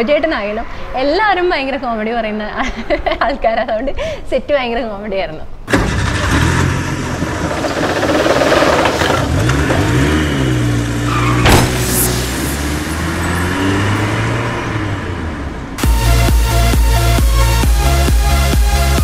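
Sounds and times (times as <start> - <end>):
car engine revving: 5.7 - 17.6
sharp hit: 11.3 - 13.9
low drone: 11.4 - 17.6.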